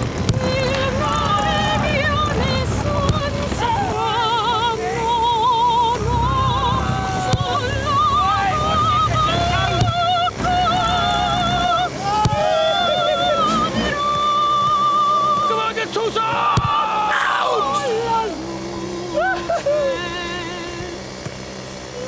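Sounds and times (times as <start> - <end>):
operatic singing: 0.0 - 21.2.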